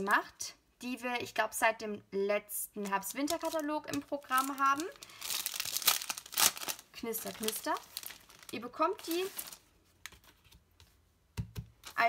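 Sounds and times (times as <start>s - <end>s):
plastic wrapping crinkling: 2.8s - 10.5s.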